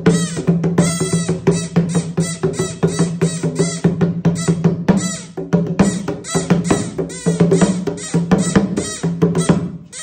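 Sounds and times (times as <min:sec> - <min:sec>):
hand drum beating: 0:00.0 - 0:09.9.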